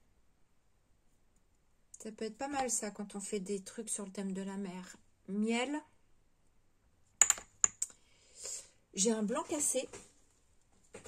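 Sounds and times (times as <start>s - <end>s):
plastic paint jars clicking: 7.2s - 7.9s.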